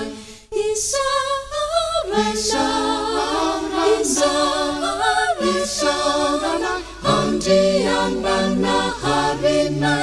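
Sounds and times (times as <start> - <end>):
choir singing a cappella hymn: 0.0 - 10.0.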